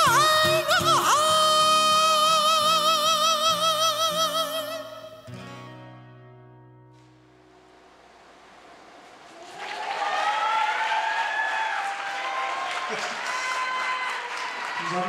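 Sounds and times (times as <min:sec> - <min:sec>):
man singing with vibrato: 0:00.0 - 0:05.6
audience applause and cheering: 0:08.4 - 0:15.0.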